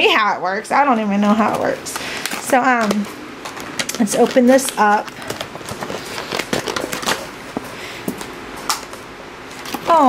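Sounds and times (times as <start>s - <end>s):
packaging crinkling and tearing: 1.9s - 7.7s, 9.5s - 10.0s.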